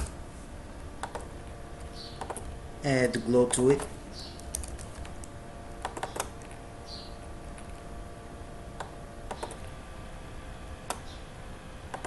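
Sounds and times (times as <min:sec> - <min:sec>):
faint steady hum: 0:00.0 - 0:12.0
mouse and keyboard clicks: 0:03.5 - 0:06.6, 0:08.8 - 0:09.7.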